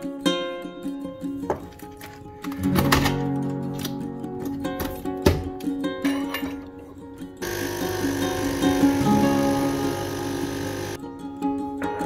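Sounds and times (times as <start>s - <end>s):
background guitar music: 0.0s - 12.0s
coffee machine pump buzzing: 7.4s - 11.0s.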